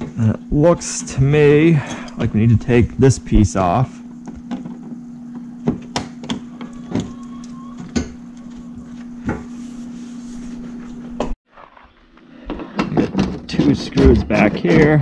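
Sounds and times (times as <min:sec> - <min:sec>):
steady low hum: 0:00.0 - 0:11.4.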